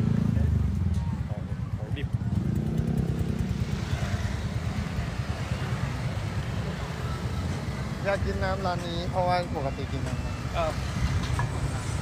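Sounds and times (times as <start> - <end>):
motorcycle engine rumbling: 0.0 - 12.0
street traffic: 0.0 - 12.0.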